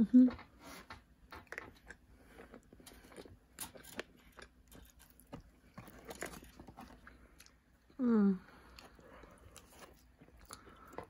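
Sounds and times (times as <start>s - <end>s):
chewing and crunching food: 0.3s - 11.0s.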